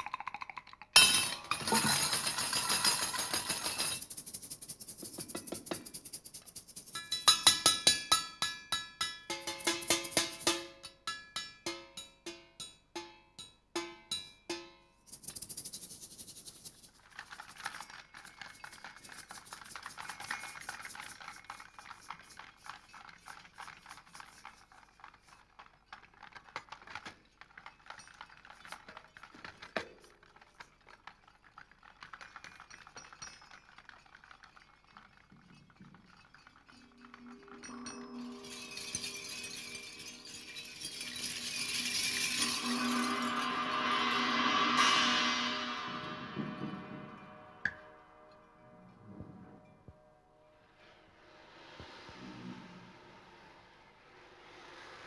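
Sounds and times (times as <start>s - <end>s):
found-object rattles and shakers: 0.0s - 10.8s, 15.0s - 47.8s
cymbal wash: 37.9s - 48.3s.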